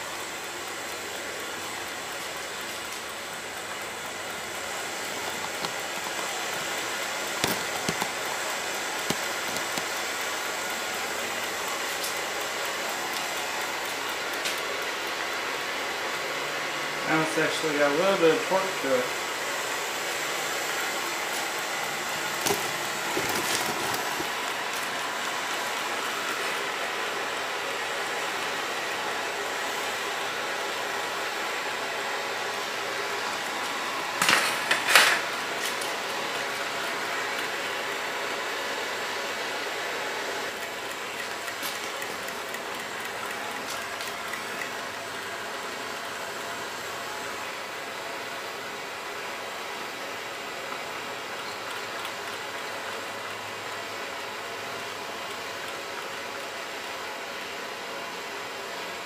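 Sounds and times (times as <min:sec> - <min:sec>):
blowtorch flame hissing: 0:00.0 - 0:16.2, 0:17.0 - 0:53.5.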